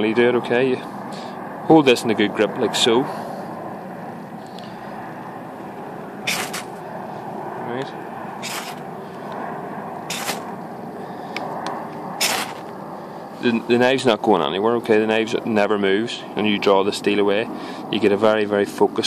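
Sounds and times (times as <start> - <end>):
fire steel scraping on knife: 6.3 - 6.8, 8.4 - 8.8, 10.1 - 10.5, 12.2 - 12.6.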